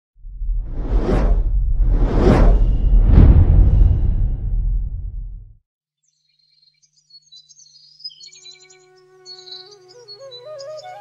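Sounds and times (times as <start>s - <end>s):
deep low rumble: 0.2s - 5.6s
whoosh: 0.2s - 5.6s.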